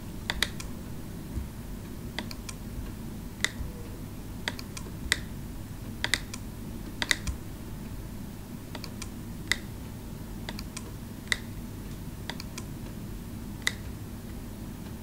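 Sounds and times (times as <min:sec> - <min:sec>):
low background hum: 0:00.0 - 0:15.0
mouse buttons clicking: 0:00.3 - 0:00.7, 0:02.2 - 0:02.6, 0:03.4 - 0:03.6, 0:04.4 - 0:05.3, 0:06.0 - 0:07.4, 0:08.7 - 0:09.7, 0:10.5 - 0:11.6, 0:12.3 - 0:12.7.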